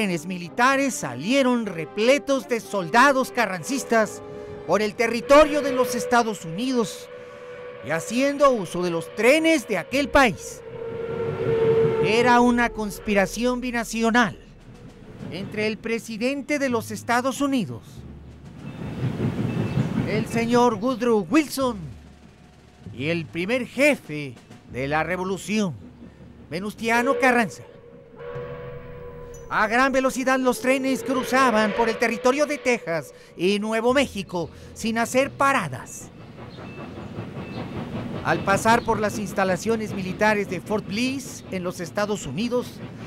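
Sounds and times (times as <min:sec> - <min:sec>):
train rumble: 0:00.0 - 0:43.0.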